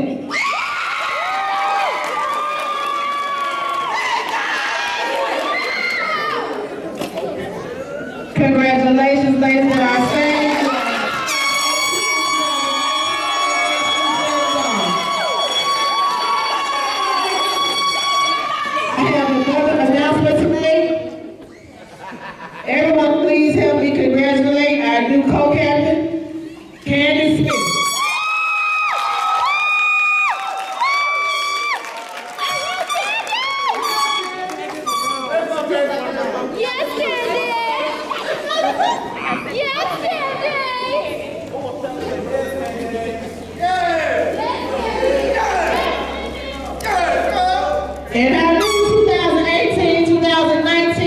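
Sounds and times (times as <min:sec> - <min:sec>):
people whooping and shrieking: 0:00.3 - 0:06.7, 0:10.4 - 0:19.9, 0:27.6 - 0:35.3, 0:43.6 - 0:48.0
air horn blast: 0:11.2 - 0:16.2, 0:27.5 - 0:28.2, 0:33.8 - 0:35.5, 0:44.4 - 0:49.7
women chattering and shrieking: 0:36.5 - 0:41.4.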